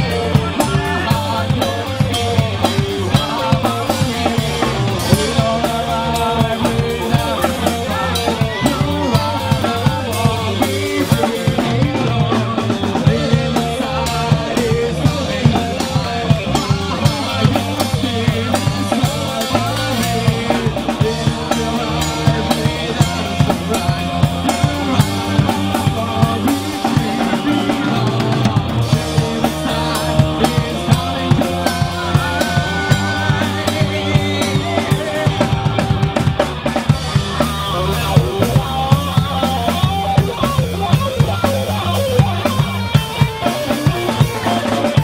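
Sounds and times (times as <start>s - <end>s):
bass guitar: 0.0s - 45.0s
drum kit beat: 0.0s - 45.0s
electric guitar: 0.0s - 45.0s.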